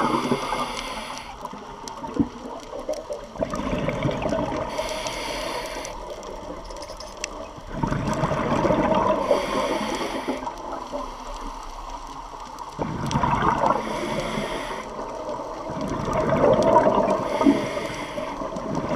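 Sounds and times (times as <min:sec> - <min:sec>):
inhalation hiss through regulator: 0:00.0 - 0:01.6, 0:04.7 - 0:06.2, 0:09.2 - 0:11.9, 0:13.7 - 0:15.1, 0:17.2 - 0:18.5
bubbling exhaled air underwater: 0:00.0 - 0:06.6, 0:07.3 - 0:11.6, 0:12.6 - 0:18.9.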